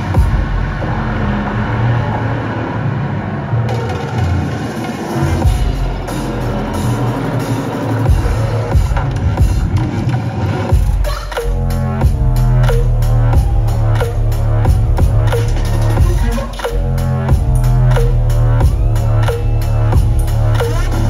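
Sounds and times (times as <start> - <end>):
electronic dance music heavy bass: 0.0 - 21.0.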